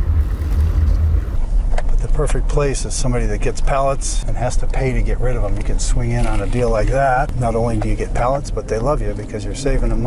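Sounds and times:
road noise: 0.0s - 10.0s
truck engine rumble: 0.0s - 10.0s.

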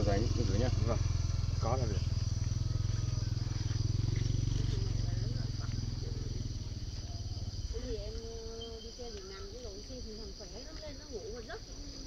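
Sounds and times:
pulsing engine drone: 0.0s - 9.0s
faint voices: 0.0s - 12.0s.

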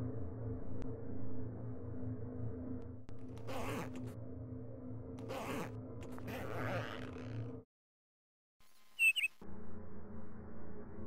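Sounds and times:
low steady hum: 0.0s - 7.6s, 8.6s - 11.0s
bag zipper pulled: 3.4s - 4.0s, 5.2s - 7.4s.

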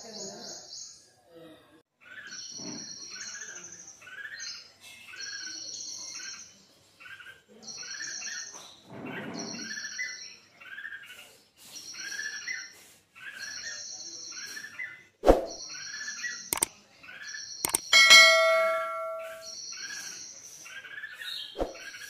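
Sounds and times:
bird chirping: 17.4s - 19.6s
high buzzy bird trill: 17.7s - 19.5s.

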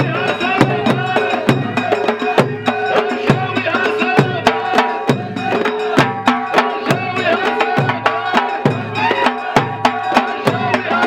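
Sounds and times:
chorus of voices singing: 0.0s - 11.0s
drumming: 0.0s - 11.0s
sharp percussion strikes: 0.0s - 11.0s.

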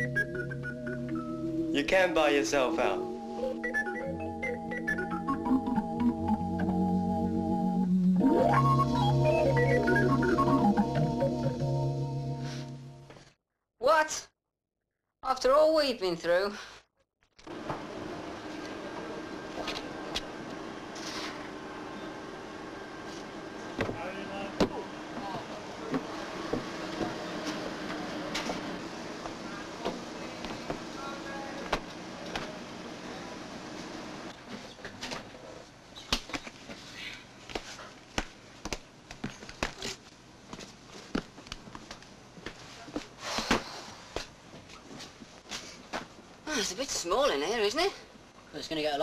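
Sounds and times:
machinery hum: 0.0s - 13.2s, 17.5s - 34.4s.

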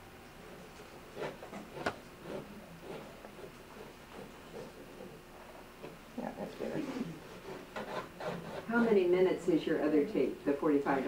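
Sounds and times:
pencil drawing on paper: 1.1s - 5.1s, 6.7s - 9.0s.

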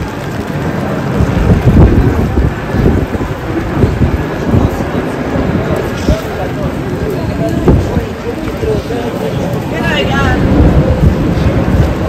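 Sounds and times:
busy street noise: 0.0s - 12.0s
passersby talking: 0.0s - 12.0s.

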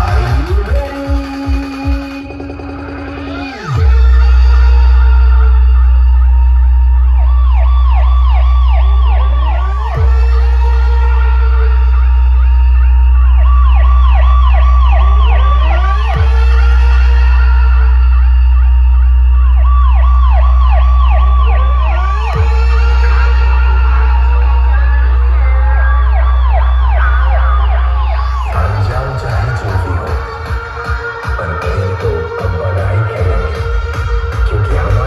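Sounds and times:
deep loud bass tone: 0.0s - 35.0s
electronic beat: 0.0s - 35.0s
siren-like synth sweeps: 0.0s - 35.0s.

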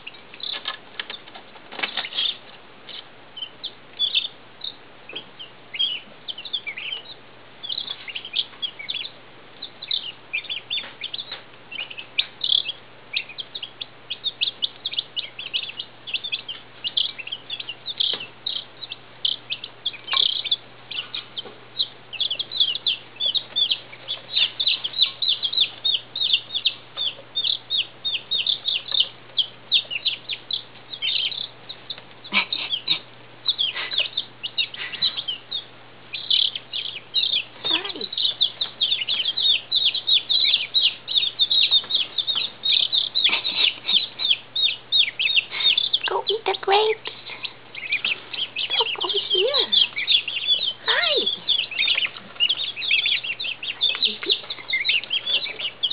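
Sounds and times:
chicks peeping: 0.0s - 55.9s
low steady hum: 0.0s - 55.9s.

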